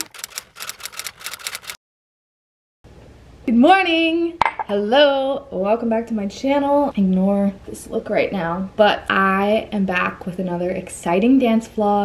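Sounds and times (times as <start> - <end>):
typewriter key clacks: 0.0 - 1.8.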